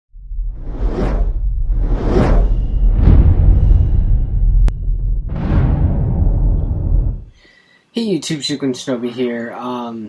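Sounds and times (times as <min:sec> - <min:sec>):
deep low rumble: 0:00.1 - 0:07.4.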